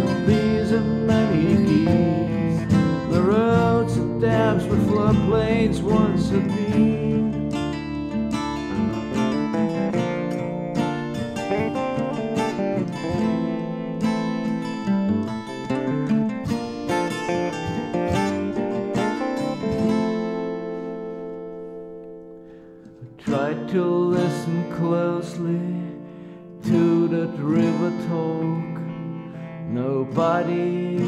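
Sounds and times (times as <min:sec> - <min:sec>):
blues guitar playing: 0:00.0 - 0:31.0.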